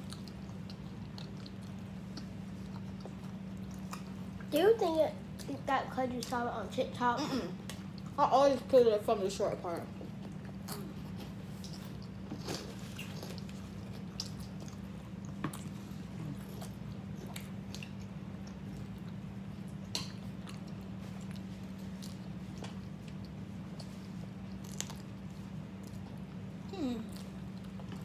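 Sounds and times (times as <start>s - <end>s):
biting and chewing sandwiches: 0.0s - 4.5s, 9.8s - 28.0s
steady low hum: 0.0s - 28.0s.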